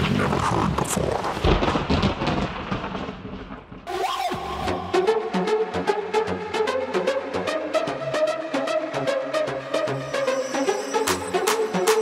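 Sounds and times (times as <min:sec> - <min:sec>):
rumbling noise effect: 0:00.0 - 0:03.9.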